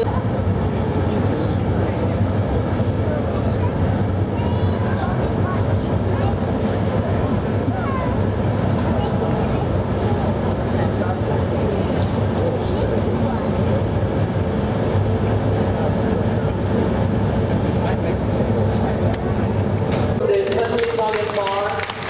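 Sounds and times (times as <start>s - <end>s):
faint constant hum: 0.0s - 22.0s
furnace and blowers roaring: 0.0s - 22.0s
murmur of voices: 0.0s - 22.0s.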